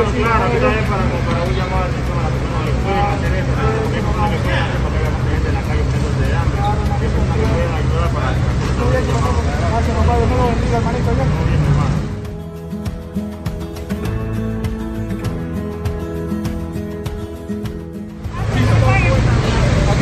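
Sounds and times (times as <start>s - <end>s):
indistinct voices talking: 0.0s - 20.0s
road traffic rumble: 0.0s - 20.0s.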